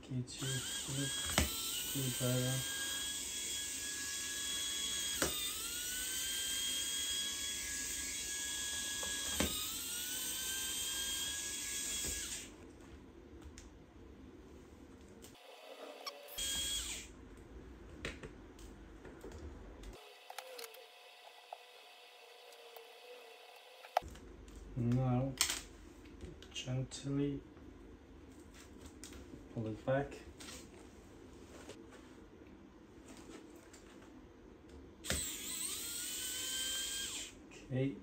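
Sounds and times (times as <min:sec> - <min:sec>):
electric screwdriver whining: 0:00.4 - 0:12.5, 0:15.9 - 0:17.1, 0:19.9 - 0:24.0, 0:35.0 - 0:37.4.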